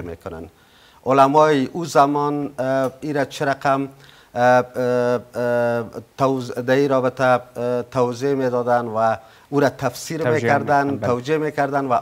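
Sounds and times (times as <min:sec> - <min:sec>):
man speaking drawn-out syllables: 0:10.1 - 0:11.3.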